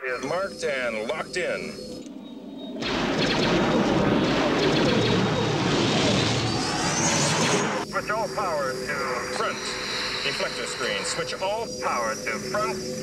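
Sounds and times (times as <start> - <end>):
rising whine: 0.0 - 13.0
spacecraft engines rushing: 0.4 - 13.0.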